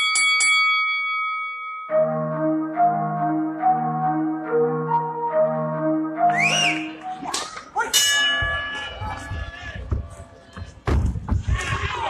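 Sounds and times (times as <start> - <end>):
ring bell ringing: 0.0 - 1.9, 7.9 - 9.5
melodic intro music: 1.9 - 7.3.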